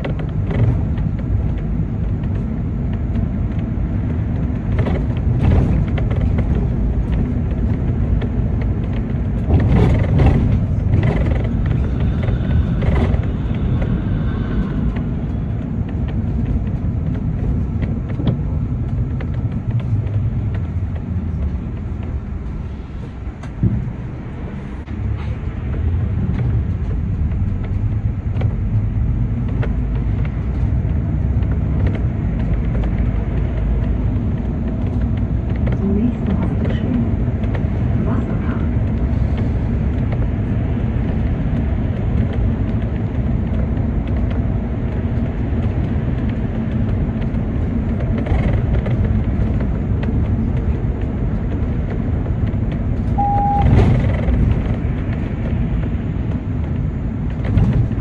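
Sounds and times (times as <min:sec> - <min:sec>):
small rattles and knocks: 0:00.0 - 0:25.0
bus road rumble: 0:00.0 - 0:58.0.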